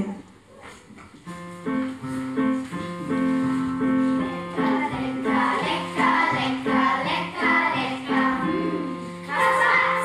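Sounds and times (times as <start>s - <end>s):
piano accompaniment: 1.1s - 10.0s
children's choir singing polka: 4.4s - 10.0s.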